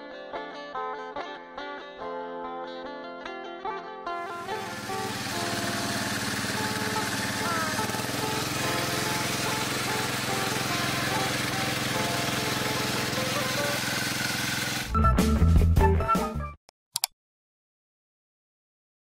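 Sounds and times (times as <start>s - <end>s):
guitar music: 0.0s - 16.5s
boat engine running: 4.3s - 14.9s.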